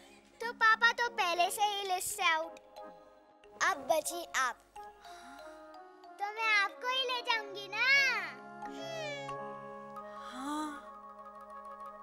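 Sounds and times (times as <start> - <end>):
soft background score: 0.0 - 12.0.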